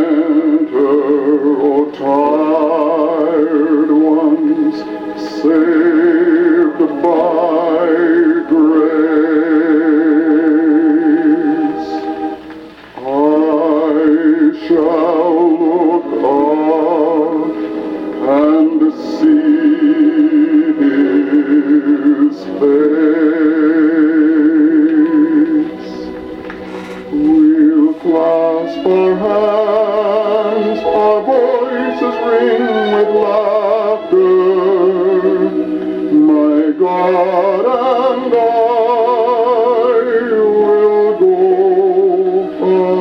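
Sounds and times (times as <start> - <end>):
phonograph record playing: 0.0 - 43.0
solo singer with wide vibrato: 0.0 - 43.0.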